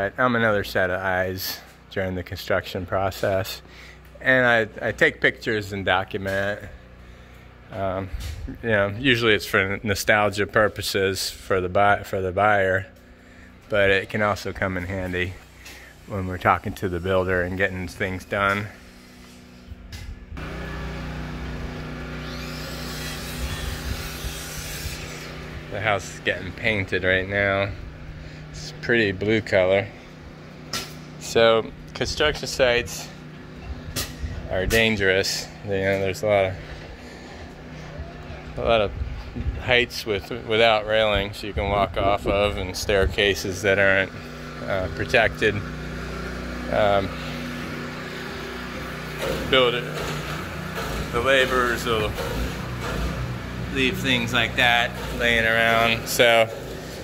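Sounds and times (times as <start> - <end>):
machine hum: 0.0 - 57.0.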